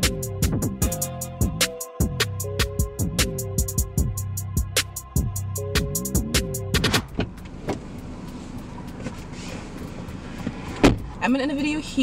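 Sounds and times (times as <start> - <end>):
background music with beat: 0.0 - 10.7
car cabin hum: 4.0 - 12.0
sharp thump: 10.8 - 11.1
woman talking: 11.2 - 12.0.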